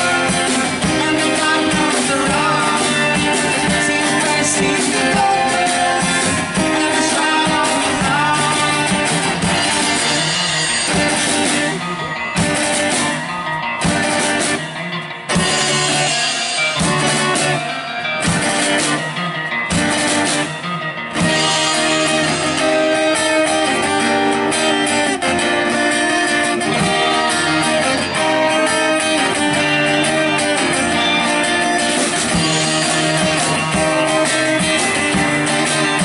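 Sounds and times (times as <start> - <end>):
drum kit with cymbals: 0.0 - 36.0
electric guitars: 0.0 - 36.0.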